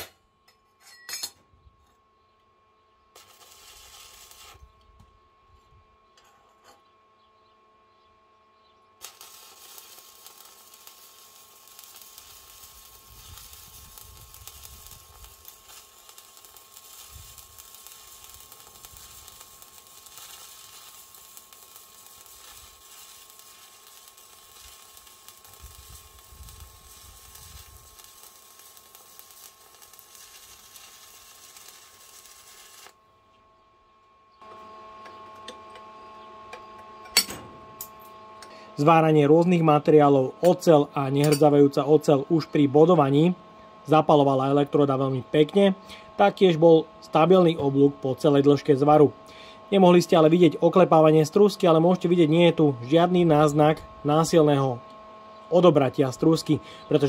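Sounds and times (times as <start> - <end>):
welding arc crackling hiss: 3.1 - 4.7, 9.0 - 33.0, 37.2 - 57.0.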